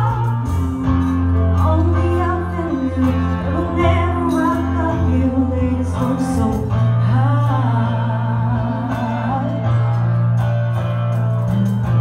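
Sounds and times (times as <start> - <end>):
woman singing into microphone: 0.0 - 0.7, 1.4 - 10.2
electric bass notes: 0.0 - 12.0.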